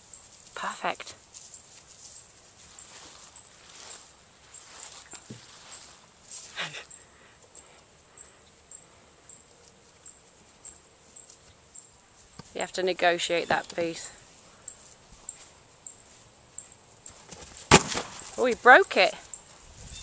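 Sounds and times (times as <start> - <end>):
insect chirping in grass: 0.0 - 20.0.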